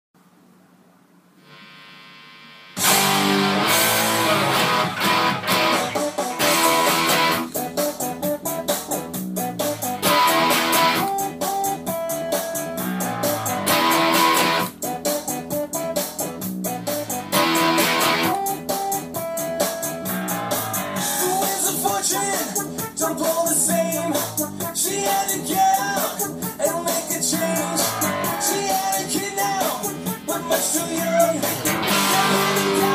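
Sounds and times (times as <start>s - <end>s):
electric guitar: 1.4s - 32.9s
pop-punk band music: 2.8s - 32.9s.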